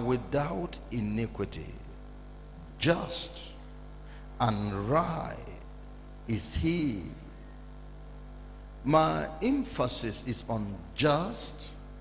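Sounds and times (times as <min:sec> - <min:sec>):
man's amplified speech: 0:00.0 - 0:01.9, 0:02.6 - 0:03.6, 0:04.4 - 0:05.7, 0:06.3 - 0:07.3, 0:08.8 - 0:11.8
electrical mains hum: 0:00.0 - 0:12.0.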